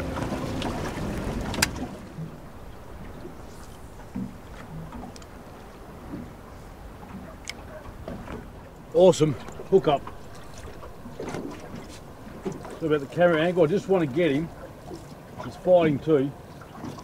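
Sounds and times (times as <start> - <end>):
choppy water against boat: 0.0 - 17.0
wind: 0.0 - 17.0
faint ticks: 3.5 - 5.4.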